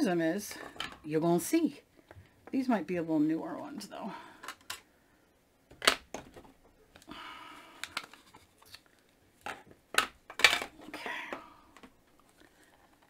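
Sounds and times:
plastic cases clicking and knocking: 5.7s - 6.6s, 9.4s - 12.0s.

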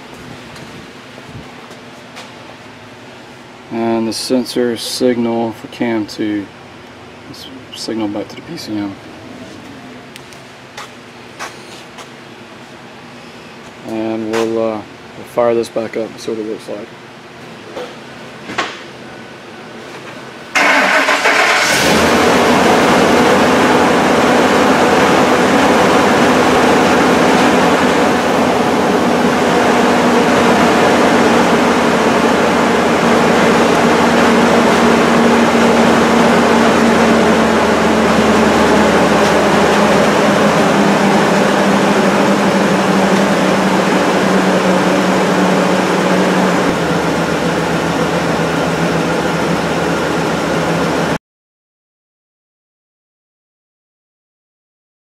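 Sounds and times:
engine cranking and starting: 20.6s - 23.8s
rough engine idling: 20.6s - 51.2s.

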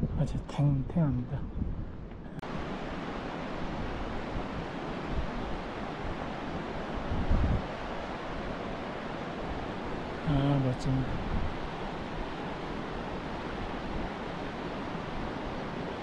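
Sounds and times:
wind buffeting microphone: 0.0s - 16.0s
river rushing over stones: 2.4s - 16.0s.

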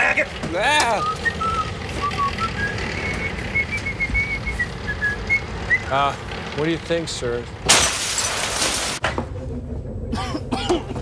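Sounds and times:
steady low hum: 0.0s - 11.0s
person coughing and clearing throat: 10.1s - 11.0s.

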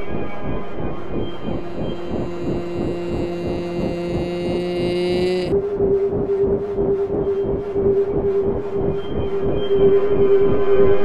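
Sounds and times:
fast regular electronic pulse: 0.0s - 10.0s
synthesizer drone: 0.0s - 11.0s.

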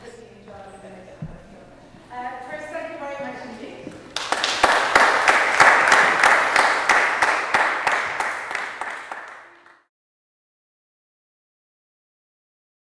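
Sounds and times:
audience applauding: 4.1s - 9.9s.

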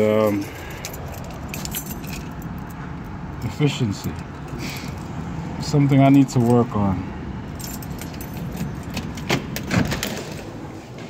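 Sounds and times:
keys jangling: 0.0s - 2.8s, 7.5s - 9.3s.

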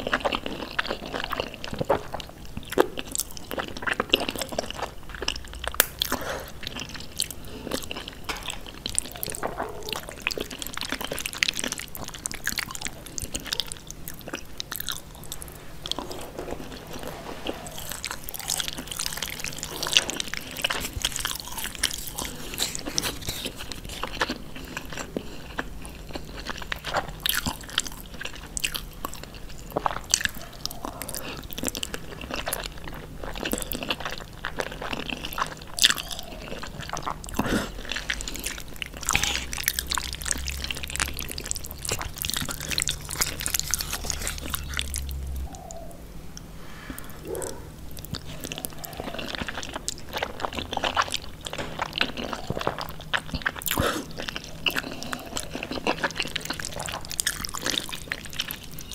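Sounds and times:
chewing noodles with mouth smacks: 0.0s - 45.3s, 46.9s - 58.9s.

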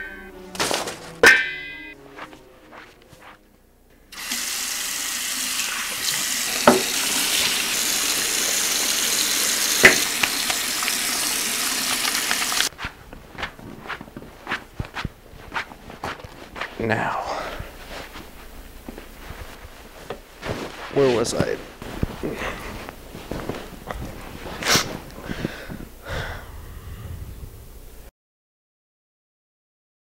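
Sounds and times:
tap water running into sink: 4.1s - 12.7s
hands washing: 4.1s - 16.8s, 17.5s - 25.9s
sharp knocks: 6.7s - 6.9s.

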